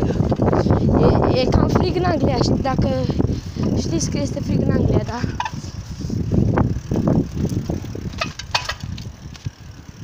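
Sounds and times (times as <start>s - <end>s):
phone microphone handling rumble: 4.9s - 9.6s.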